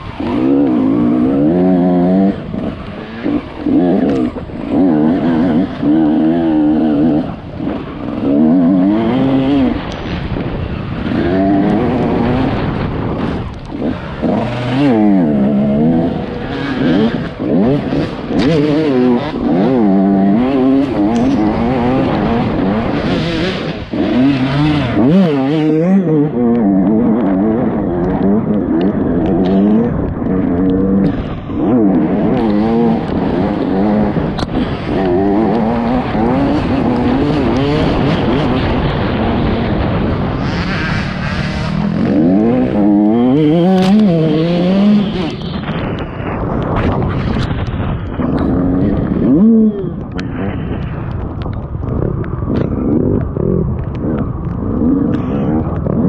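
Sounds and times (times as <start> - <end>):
dirt bike engine revving: 0.0 - 50.7.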